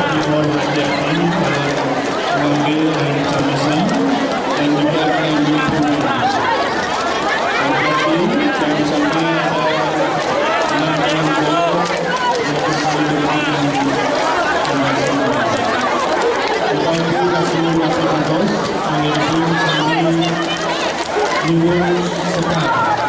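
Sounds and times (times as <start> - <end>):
crowd shouting and chattering: 0.0 - 23.0.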